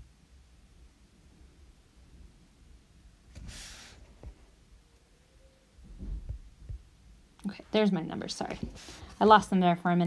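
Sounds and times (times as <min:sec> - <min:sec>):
dull low thumps: 0:05.8 - 0:06.9.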